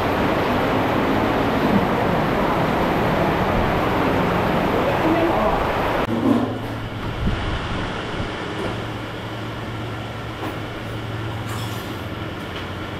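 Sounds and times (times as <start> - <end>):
low mechanical hum: 0.0 - 12.9.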